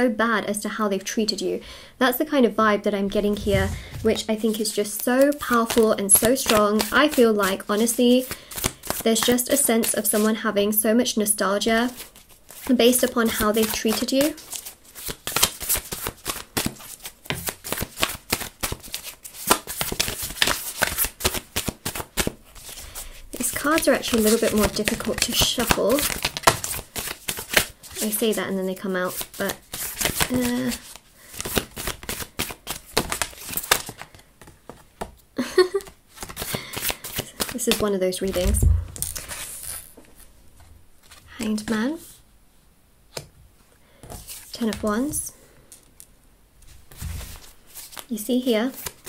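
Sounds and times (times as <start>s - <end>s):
cards being shuffled: 3.2s - 9.3s, 12.0s - 22.8s, 23.4s - 28.2s, 29.1s - 35.1s, 35.7s - 40.3s, 46.9s - 48.1s.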